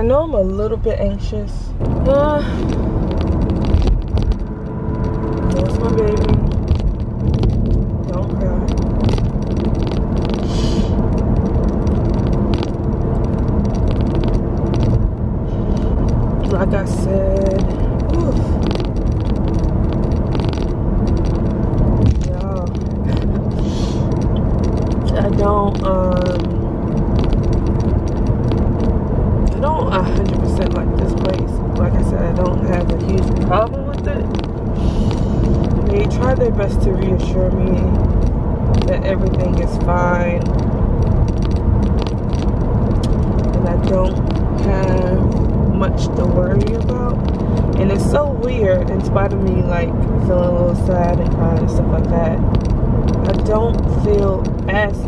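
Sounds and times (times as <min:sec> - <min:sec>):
woman speaking: 0:00.0 - 0:02.7, 0:05.5 - 0:06.5, 0:08.1 - 0:08.8, 0:16.4 - 0:18.6, 0:22.2 - 0:24.1, 0:25.0 - 0:26.6, 0:29.5 - 0:34.4, 0:35.9 - 0:38.0, 0:38.8 - 0:40.5, 0:43.6 - 0:47.2, 0:47.8 - 0:52.4, 0:53.3 - 0:55.0
car cabin road noise: 0:00.0 - 0:55.0.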